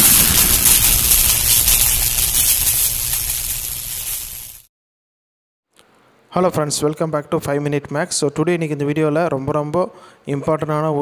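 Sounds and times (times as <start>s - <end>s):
low rumble: 0.0s - 4.1s
boom tail hiss: 0.0s - 4.7s.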